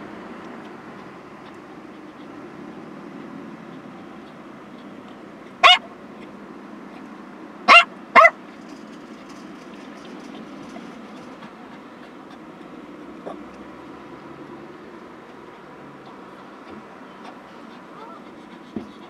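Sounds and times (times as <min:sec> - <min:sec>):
dog barking: 0:05.6 - 0:05.9, 0:07.7 - 0:08.4.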